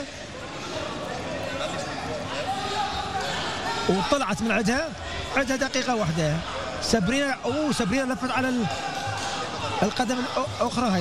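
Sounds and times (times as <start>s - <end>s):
venue noise: 0.0s - 11.0s.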